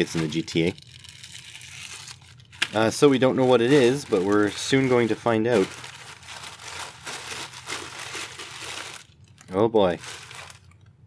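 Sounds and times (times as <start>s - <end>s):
plastic bags crinkling: 0.0s - 10.9s.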